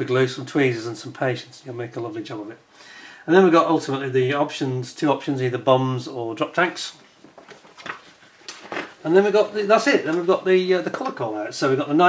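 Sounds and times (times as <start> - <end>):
paper pages rustling: 6.9 - 11.2
paper crinkles: 7.0 - 10.5.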